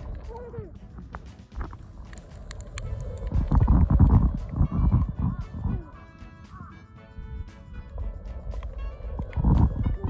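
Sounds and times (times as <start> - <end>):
background music: 0.0 - 10.0
low underwater rumbling: 0.0 - 10.0.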